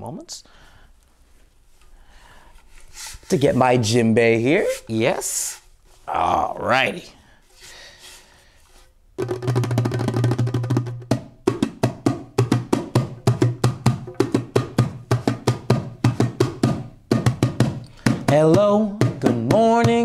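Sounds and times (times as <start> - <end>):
djembe played with hands: 9.2 - 18.3.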